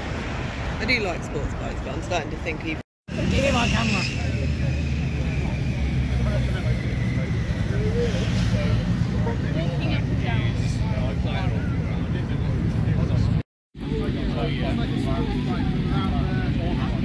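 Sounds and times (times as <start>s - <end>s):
faint voices: 3.1s - 17.0s.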